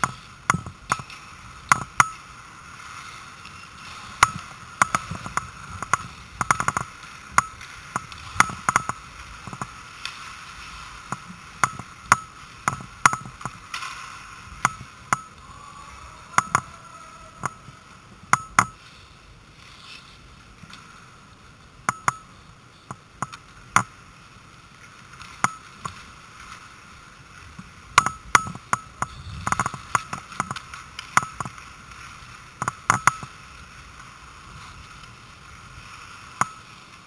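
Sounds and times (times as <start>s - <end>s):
sharp clacks on ice: 0.0s - 15.3s, 25.1s - 26.7s, 27.5s - 33.4s, 35.9s - 37.0s
skate blades hissing: 0.0s - 15.4s, 23.0s - 37.0s.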